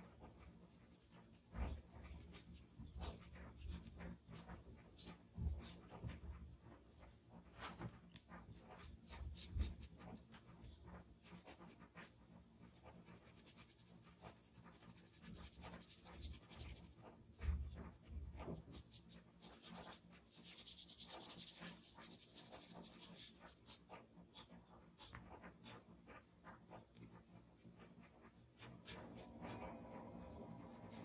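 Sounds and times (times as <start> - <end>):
cotton swab scratching on paper: 0.0 - 6.4, 8.1 - 31.0.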